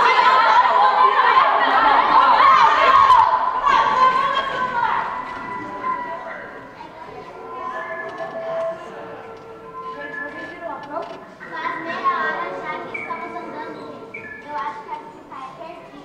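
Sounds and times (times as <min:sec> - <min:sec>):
children's voices overlapping: 0:00.0 - 0:16.0
music with long held notes: 0:05.0 - 0:11.5.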